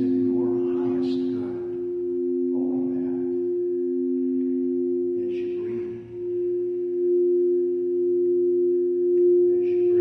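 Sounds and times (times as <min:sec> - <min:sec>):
crystal singing bowls ringing: 0:00.0 - 0:10.0.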